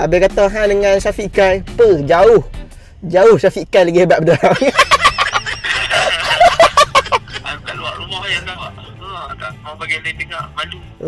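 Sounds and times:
young man laughing hard: 4.3s - 7.6s.

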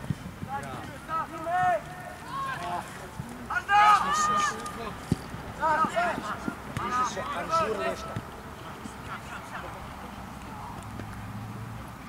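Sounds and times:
players shouting: 0.5s - 10.8s.

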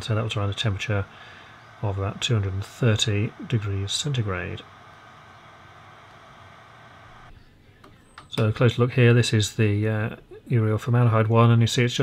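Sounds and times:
fan blowing airy hiss: 0.0s - 7.3s.

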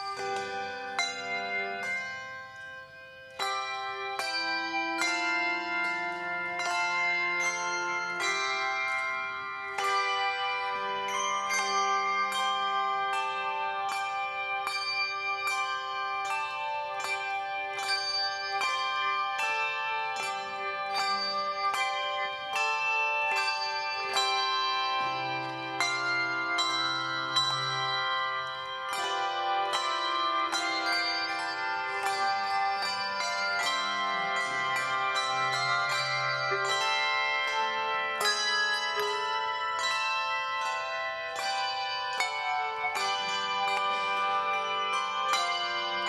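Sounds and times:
handbell choir playing: 0.0s - 46.0s.

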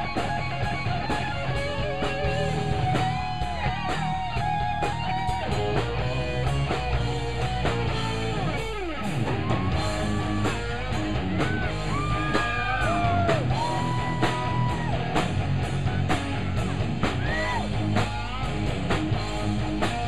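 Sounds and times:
bass guitar: 0.0s - 20.0s
distorted rhythm guitar: 0.0s - 20.0s
drum kit with cymbal hits: 0.0s - 20.0s
electric lead guitar bent notes: 0.0s - 20.0s.

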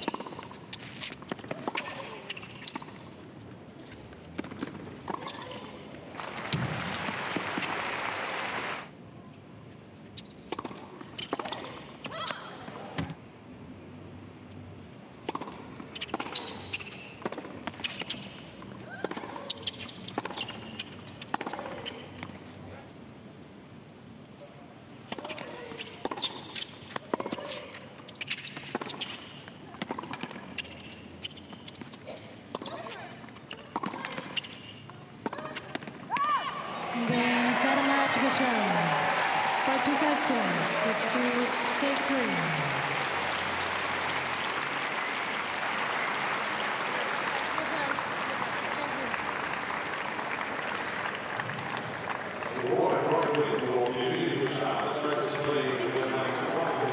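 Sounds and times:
tennis ball bouncing: 0.0s - 3.0s, 10.4s - 11.7s, 15.2s - 21.8s, 25.1s - 27.6s, 28.3s - 39.1s.

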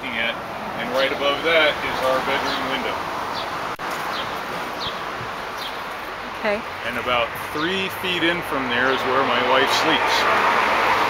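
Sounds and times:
steady outdoor noise: 0.0s - 11.0s.

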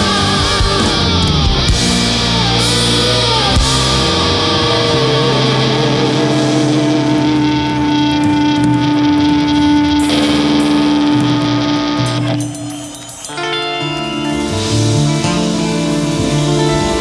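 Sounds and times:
electric guitar held notes: 0.0s - 17.0s
live rock band playing: 0.0s - 17.0s.

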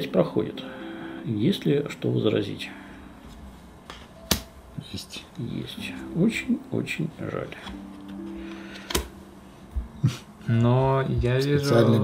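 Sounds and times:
playing card clicking on board: 3.9s - 4.5s, 8.8s - 9.1s.

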